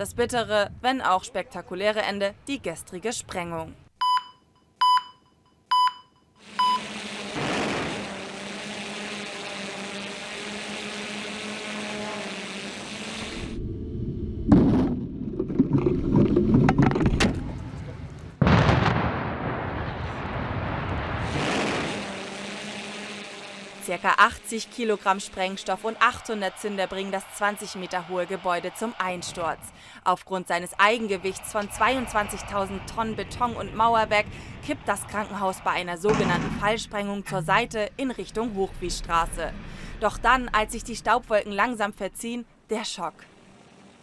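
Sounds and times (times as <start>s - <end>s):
outdoor noise: 0.0s - 44.0s
short beeps: 4.0s - 6.9s
explosive charges cracking: 7.3s - 8.3s, 18.3s - 22.2s
building collapse rumble: 13.6s - 21.9s, 30.8s - 42.2s.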